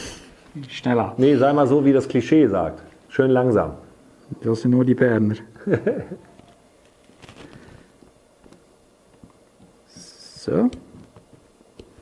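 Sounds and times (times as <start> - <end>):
soft clicks and rustles: 6.2 - 12.0.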